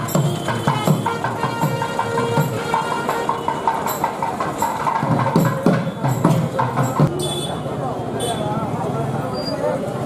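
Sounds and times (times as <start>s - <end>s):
wind instrument melody: 0.0s - 4.2s
drum strokes: 0.0s - 7.2s.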